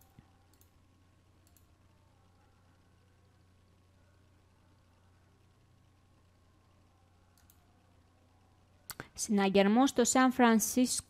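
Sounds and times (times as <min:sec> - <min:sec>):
computer mouse clicks: 0:00.0 - 0:00.8, 0:01.4 - 0:01.7, 0:07.4 - 0:07.6.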